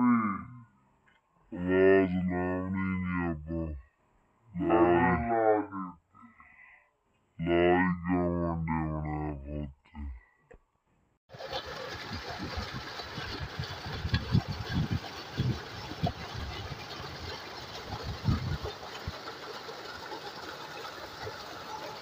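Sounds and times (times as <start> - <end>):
pump running: 11.3 - 22.0
water gushing into tank: 11.3 - 22.0.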